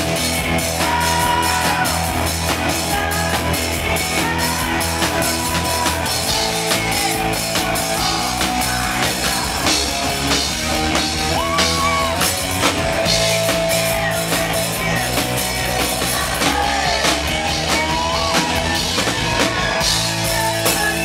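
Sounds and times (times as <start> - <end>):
live rock band playing: 0.0 - 21.0.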